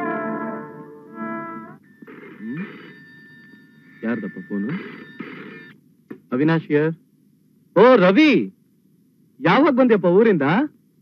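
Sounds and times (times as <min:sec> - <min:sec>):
telephone ringing: 0:00.0 - 0:05.8.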